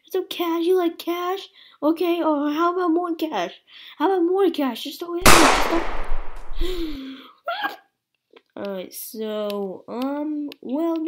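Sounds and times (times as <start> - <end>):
gunshot rumble: 5.2 - 7.0.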